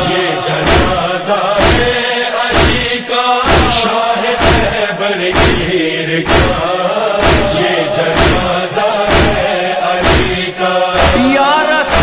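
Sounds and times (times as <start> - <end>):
person chanting a melody: 0.0 - 12.0
steady beat: 0.1 - 12.0.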